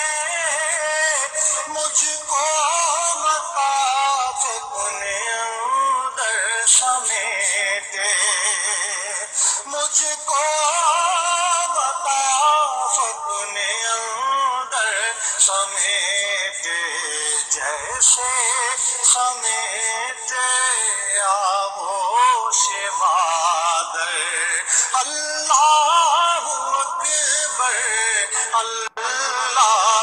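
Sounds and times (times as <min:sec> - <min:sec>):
person singing ornamented notes: 0:00.0 - 0:30.0.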